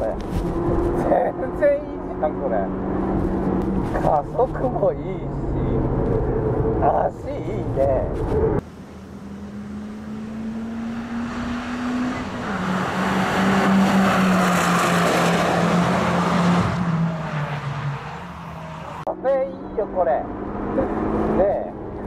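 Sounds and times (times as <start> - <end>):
tyre and road noise: 0.0 - 22.0
car engine driving past: 8.6 - 19.0.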